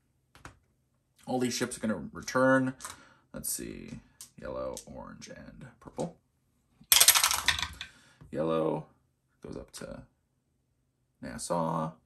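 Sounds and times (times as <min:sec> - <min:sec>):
dice clattering through dice tower: 0:06.9 - 0:07.9.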